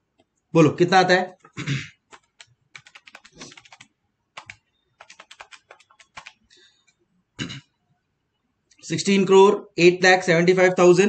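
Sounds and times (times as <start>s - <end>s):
calculator keys clicking: 2.1s - 6.4s.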